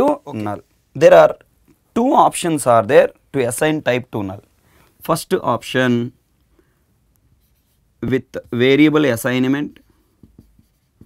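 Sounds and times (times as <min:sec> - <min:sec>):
marker scratching on whiteboard: 0:07.4 - 0:09.0, 0:09.7 - 0:11.0.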